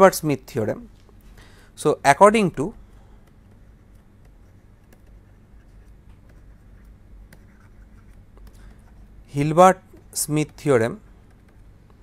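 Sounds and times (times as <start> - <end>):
low steady hum: 0.0 - 12.0
stylus scratching on pen tablet: 3.5 - 9.3.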